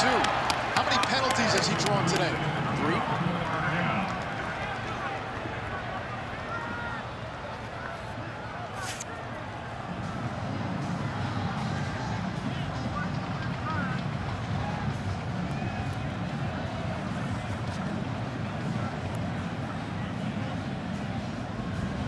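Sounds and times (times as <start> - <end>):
stadium crowd murmur: 0.0 - 22.0.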